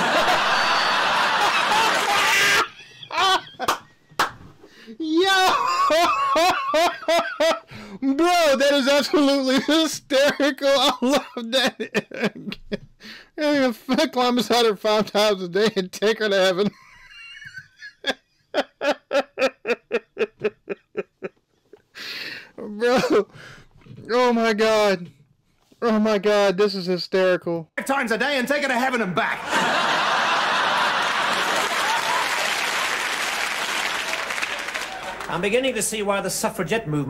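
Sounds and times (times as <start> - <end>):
studio audience laughing: 0.0 - 4.1, 29.4 - 35.3
man laughing in breathy bursts: 0.0 - 8.1, 9.6 - 13.4, 16.7 - 23.4.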